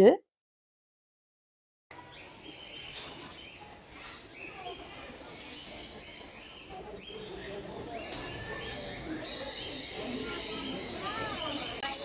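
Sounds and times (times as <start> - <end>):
small birds chirping: 1.9 - 12.0.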